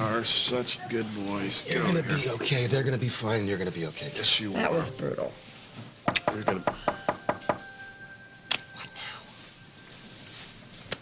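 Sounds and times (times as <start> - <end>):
knocking on wooden door: 6.1 - 7.6.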